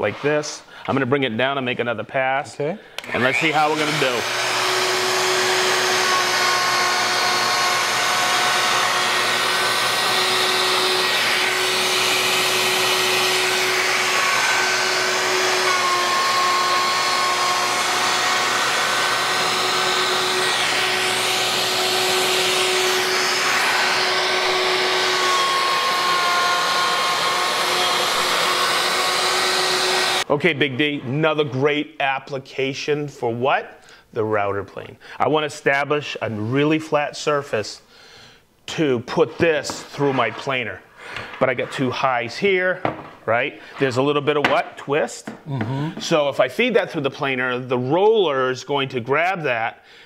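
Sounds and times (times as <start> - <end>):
dust extractor suction: 3.0 - 30.3
router cutting wood: 3.0 - 30.4.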